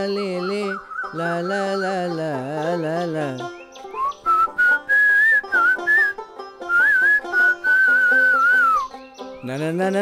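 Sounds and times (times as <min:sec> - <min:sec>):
whistled tune: 0:03.7 - 0:09.3.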